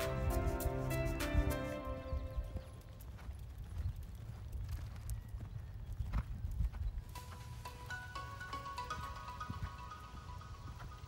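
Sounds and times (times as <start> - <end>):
horse hoofbeats on sand: 0.0 - 11.0.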